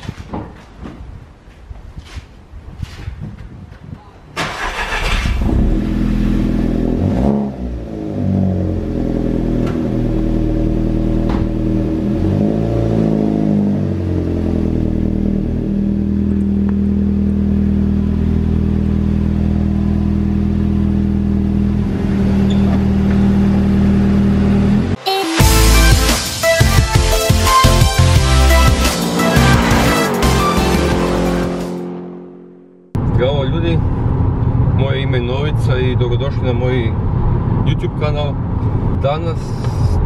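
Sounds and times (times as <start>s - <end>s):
car engine revving and idling: 5.0s - 26.1s, 27.4s - 40.0s.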